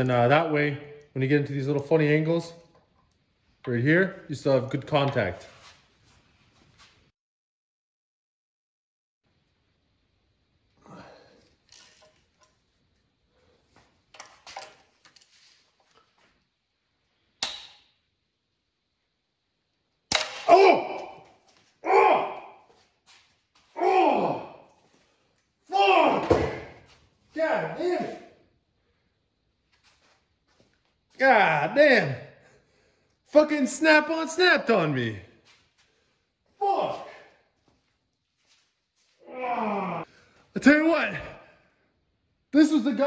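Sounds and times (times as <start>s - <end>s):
man groaning in pain: 20.4s - 21.2s, 21.8s - 22.6s, 23.8s - 24.7s, 39.2s - 40.1s.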